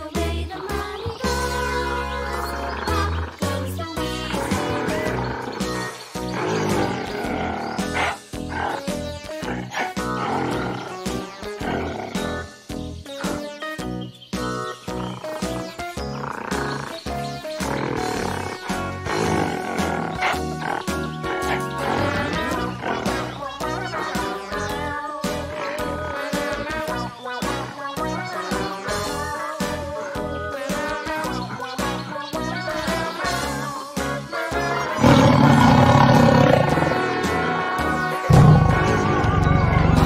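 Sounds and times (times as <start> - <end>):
upbeat children's music: 0.0 - 40.0
animal roar sound effects: 4.5 - 12.3, 17.6 - 23.3, 35.0 - 40.0.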